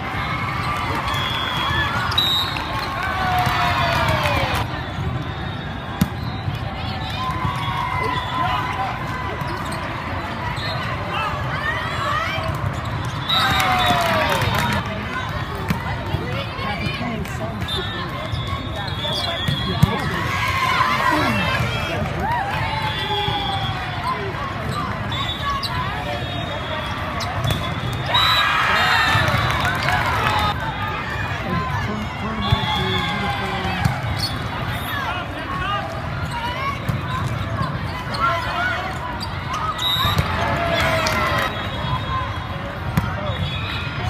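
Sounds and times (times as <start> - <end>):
chatter of spectators: 0.0 - 44.0
hubbub of voices in hall: 0.0 - 44.0
shoes squeaking on court floor: 33.8 - 35.0, 36.2 - 41.0.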